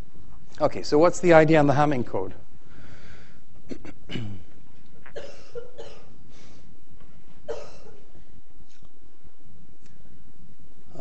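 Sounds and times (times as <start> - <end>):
man coughing: 3.7 - 4.5, 5.1 - 6.2, 7.5 - 8.0.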